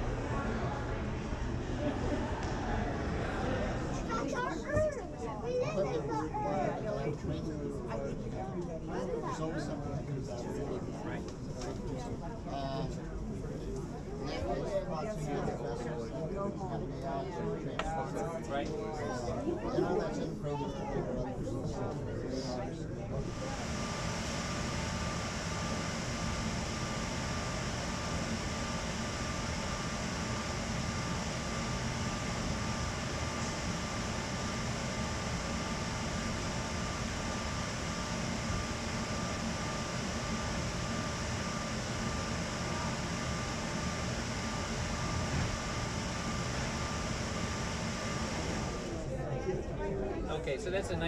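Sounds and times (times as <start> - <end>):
engine room machinery drone: 23.1 - 49.2
steady hum tones: 23.1 - 49.2.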